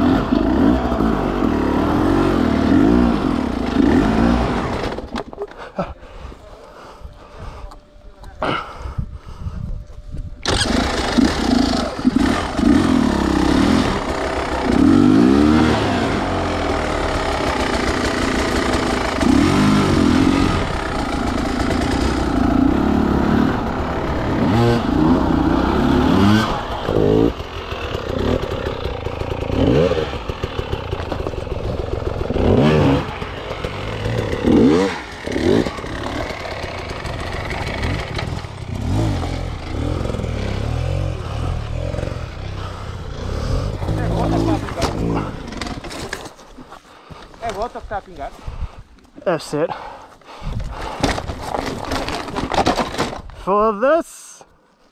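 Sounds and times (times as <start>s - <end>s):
dirt bike engine revving: 0.0s - 5.2s, 10.4s - 46.2s.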